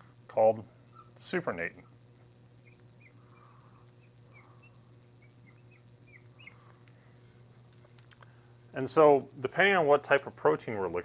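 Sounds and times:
low hum: 0:00.0 - 0:09.5.

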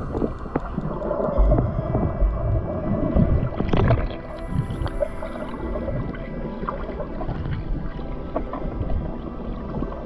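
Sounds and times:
steady underwater hum: 0:00.0 - 0:10.0
underwater rumbles and thumps: 0:00.0 - 0:10.0.

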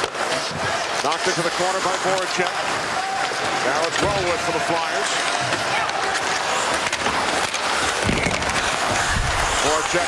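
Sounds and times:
crowd hubbub: 0:00.0 - 0:10.0
skate blades scraping ice: 0:00.0 - 0:10.0
sticks clicking on puck: 0:00.0 - 0:10.0.

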